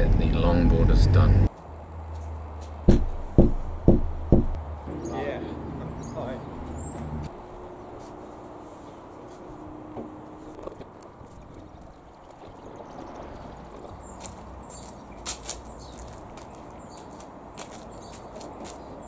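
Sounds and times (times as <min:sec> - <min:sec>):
low outdoor background noise: 0:00.0 - 0:19.0.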